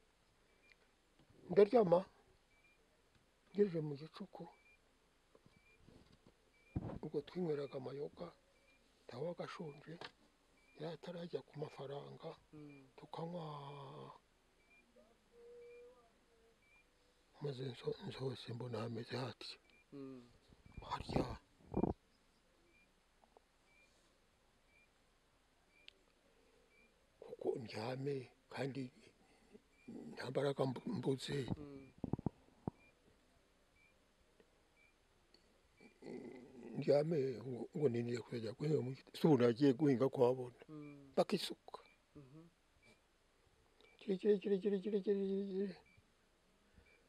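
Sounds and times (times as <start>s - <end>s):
man speaking: 7.0s - 8.4s, 9.1s - 10.1s, 10.8s - 14.2s, 17.4s - 21.4s, 27.2s - 29.0s, 29.9s - 32.0s, 36.0s - 41.9s, 44.0s - 45.8s
faint brief tone: 13.7s - 16.9s.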